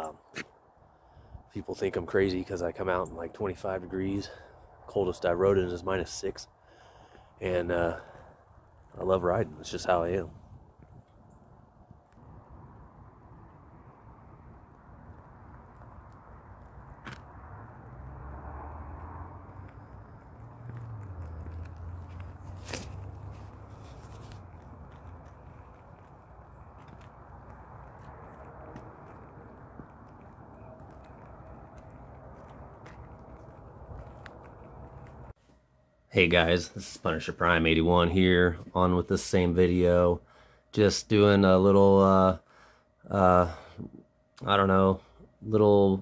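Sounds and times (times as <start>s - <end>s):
low rumble: 8.8s - 35.4s
light clicks and scrapes: 20.7s - 26.1s.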